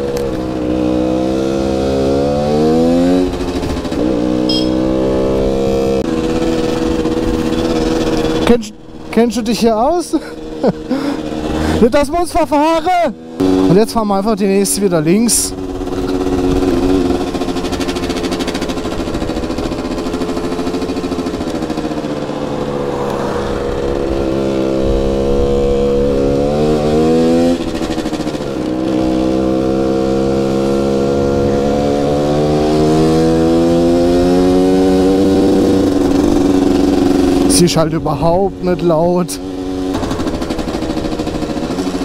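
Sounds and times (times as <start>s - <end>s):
moped engine running: 0.0s - 42.0s.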